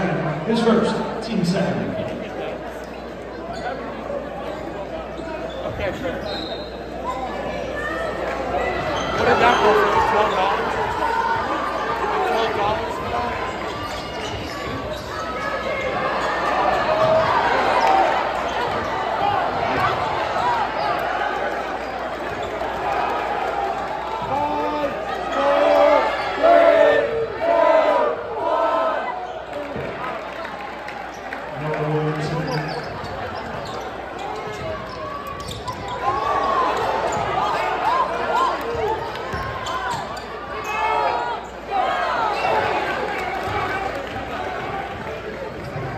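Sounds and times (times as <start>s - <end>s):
crowd chatter: 0.0s - 45.9s
sneakers squeaking on court: 12.4s - 20.1s, 32.2s - 41.6s, 44.9s - 45.9s.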